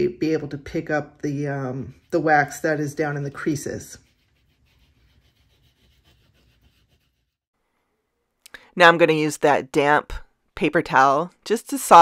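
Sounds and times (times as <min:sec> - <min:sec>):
fingertip rubbing plastic: 0:04.0 - 0:07.4.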